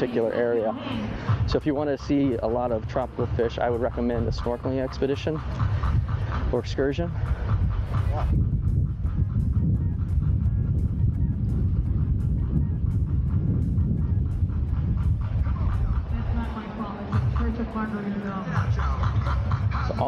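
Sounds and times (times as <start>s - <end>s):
voices: 0.0s - 8.4s, 14.0s - 20.0s
faint music: 0.0s - 20.0s
wind buffeting microphone: 0.0s - 20.0s.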